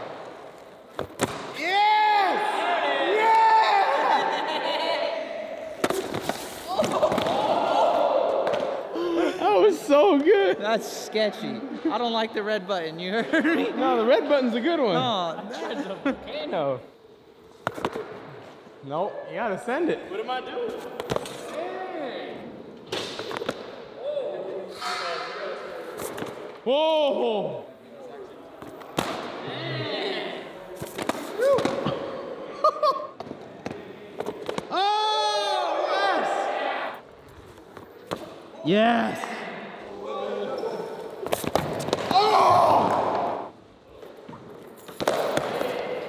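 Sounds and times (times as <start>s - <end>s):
group yelling and cheering: 1.6s - 5.8s, 6.6s - 10.4s, 34.7s - 37.0s, 42.0s - 43.6s.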